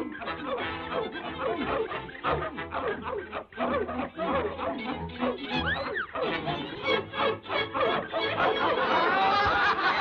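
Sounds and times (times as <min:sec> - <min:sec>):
cartoon dogs barking and yelping: 0:00.0 - 0:10.0.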